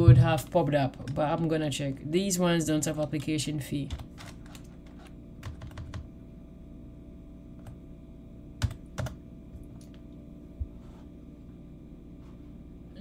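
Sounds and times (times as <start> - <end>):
steady low hum: 0.0 - 13.0
computer keyboard typing: 3.8 - 6.1, 8.6 - 9.2
loud keyboard clicks: 3.9 - 6.1, 8.6 - 9.2.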